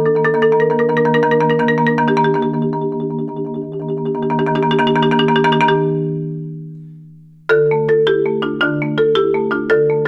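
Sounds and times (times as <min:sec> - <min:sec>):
marimba played with mallets: 0:00.0 - 0:06.7, 0:07.5 - 0:10.0.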